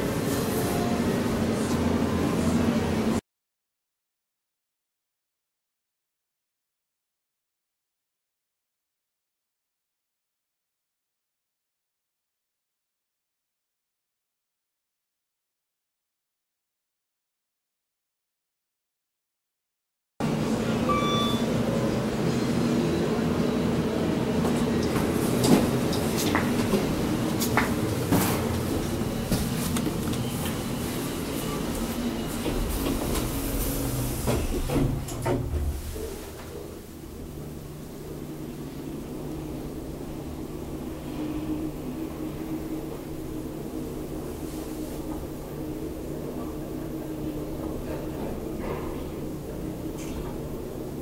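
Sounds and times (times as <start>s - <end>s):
elevator travel hum: 0.0s - 3.2s, 20.2s - 51.0s
elevator doors sliding shut: 20.6s - 21.7s, 31.6s - 36.8s.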